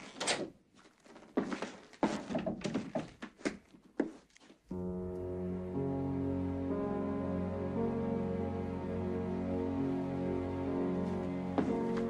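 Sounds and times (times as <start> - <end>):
heavy footsteps on hard floor: 11.0 - 12.0.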